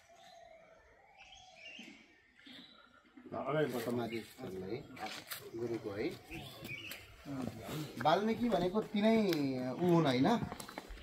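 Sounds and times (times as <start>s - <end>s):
men talking indistinctly: 3.2s - 10.9s.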